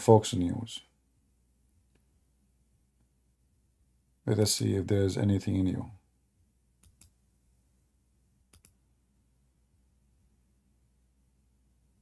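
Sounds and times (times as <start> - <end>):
computer mouse clicks: 6.8 - 7.2, 8.5 - 8.8.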